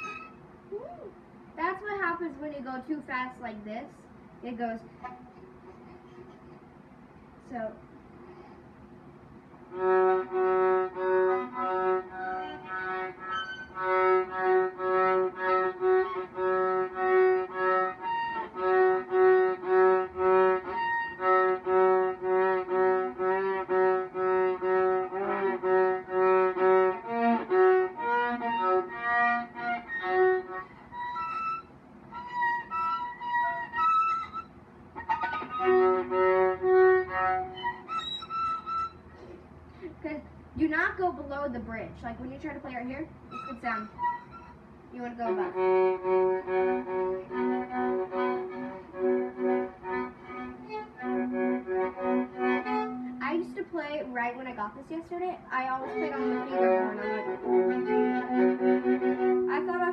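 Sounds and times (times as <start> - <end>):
viola short bow strokes: 0.0 - 0.4, 9.8 - 39.4, 45.2 - 53.3.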